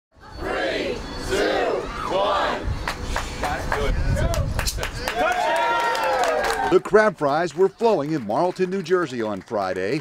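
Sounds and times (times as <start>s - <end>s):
crowd shouting in unison: 0.2s - 2.7s.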